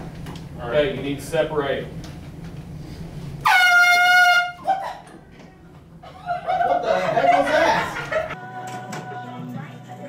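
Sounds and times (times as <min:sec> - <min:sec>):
air horn blast: 0:03.4 - 0:04.7.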